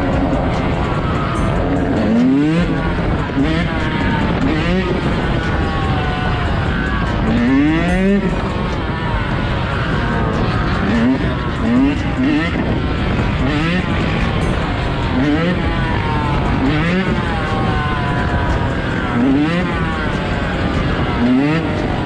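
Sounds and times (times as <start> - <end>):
dirt bike engine revving: 0.0 - 22.0
other motorcycles running: 0.0 - 22.0.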